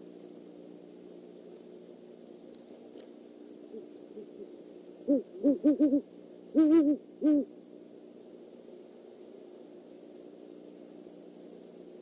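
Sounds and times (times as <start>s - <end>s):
owl hooting: 3.6s - 7.6s.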